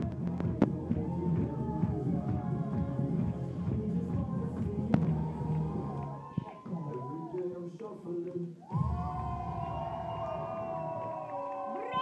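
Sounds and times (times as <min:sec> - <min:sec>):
crowd shouting and cheering: 0:00.0 - 0:07.8, 0:08.6 - 0:12.0.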